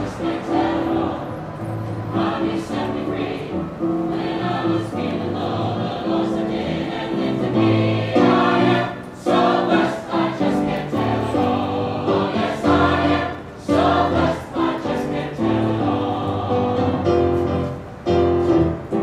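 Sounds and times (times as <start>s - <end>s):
church choir singing: 0.0s - 17.8s.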